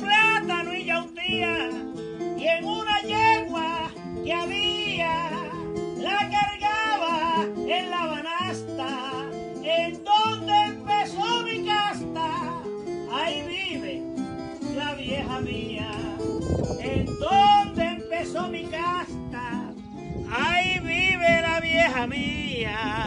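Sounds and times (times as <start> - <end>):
acoustic guitar bass accompaniment: 0.0 - 23.0
cuatro melody: 0.0 - 23.0.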